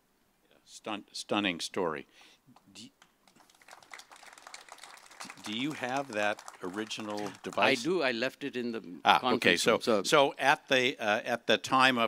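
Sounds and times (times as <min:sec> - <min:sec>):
faint audience clapping: 0:03.0 - 0:08.0.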